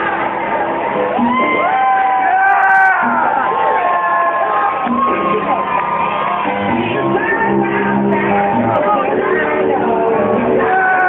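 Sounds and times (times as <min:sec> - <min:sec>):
crowd shouting and whooping: 0:00.0 - 0:11.0
loud background music: 0:00.0 - 0:11.0.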